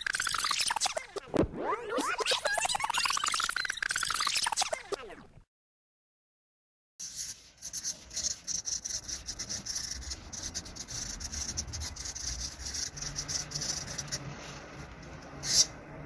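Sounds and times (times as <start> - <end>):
marker scratching on paper: 7.0 - 15.8.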